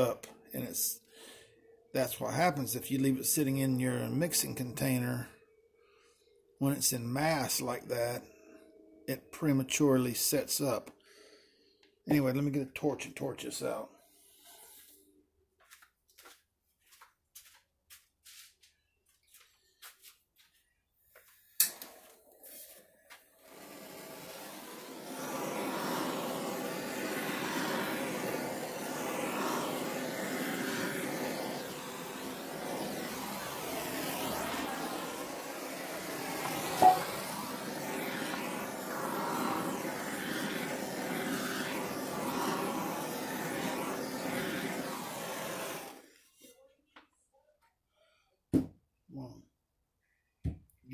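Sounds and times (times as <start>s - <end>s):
gas torch hissing: 21.4s - 46.3s
torch igniter clicks: 21.6s - 22.1s.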